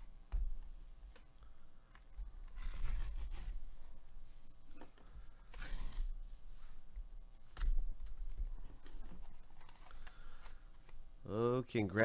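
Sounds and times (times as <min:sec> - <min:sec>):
cardboard envelope tearing: 0:02.5 - 0:03.6.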